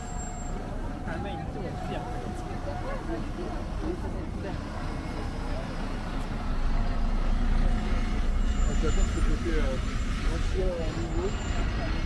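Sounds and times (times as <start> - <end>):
passers-by talking: 0.0 - 12.0
traffic engine rumble: 0.0 - 12.0.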